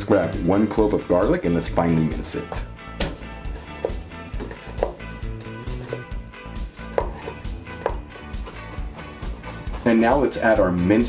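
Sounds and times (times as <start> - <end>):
background music: 0.0 - 11.0
knife knocking on wooden board: 2.6 - 5.1, 6.9 - 8.1.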